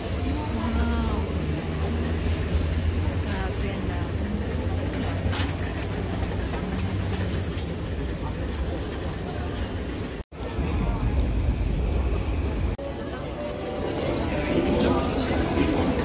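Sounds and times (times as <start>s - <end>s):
indistinct voices: 8.0s - 16.0s
steady low rumble: 10.4s - 12.8s.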